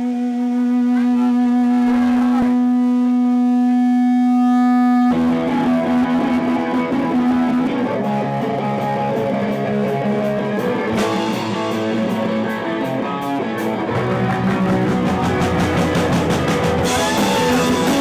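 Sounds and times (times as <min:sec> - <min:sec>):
rock band strumming chords: 0:00.0 - 0:03.7, 0:05.1 - 0:18.0
distorted electric guitar note: 0:00.0 - 0:18.0
sharp hit: 0:01.8 - 0:02.8.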